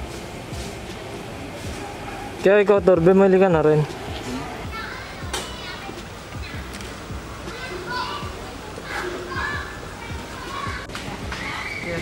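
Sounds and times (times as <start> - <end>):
faint chatter of voices: 3.7 - 12.0.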